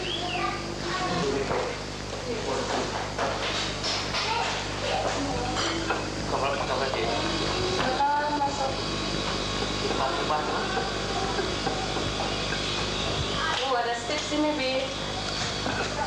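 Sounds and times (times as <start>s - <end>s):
indistinct voices talking: 0.0s - 3.2s, 4.0s - 16.0s
low hum and hiss: 0.0s - 16.0s.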